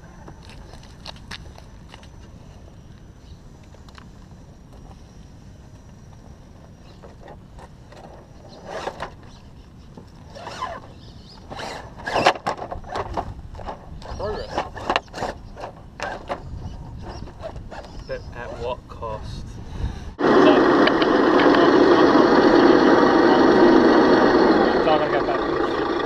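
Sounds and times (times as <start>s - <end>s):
toy truck tyres scrabbling on rock: 10.3s - 18.7s.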